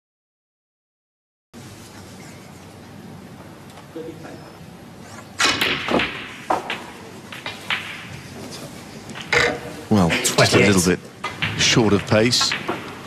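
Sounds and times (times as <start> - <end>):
cue tip striking ball: 5.4 - 8.2, 9.1 - 9.8, 11.2 - 13.0
snooker balls clicking together: 5.4 - 13.0.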